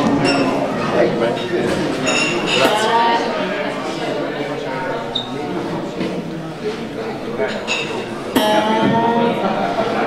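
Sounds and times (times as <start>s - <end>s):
electric guitar chord ringing: 2.6s - 3.5s, 8.4s - 10.0s.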